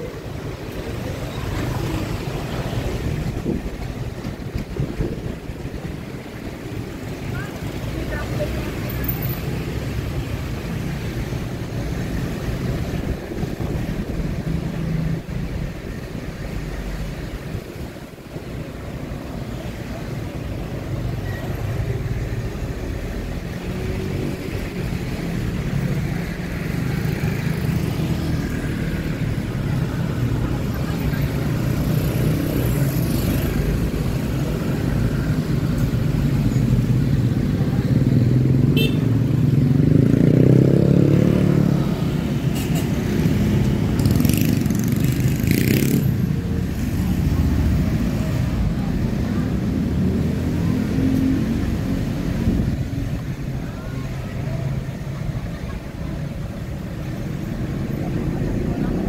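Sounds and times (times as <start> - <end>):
motorcycles passing: 0.0 - 59.0
road rumble: 0.0 - 59.0.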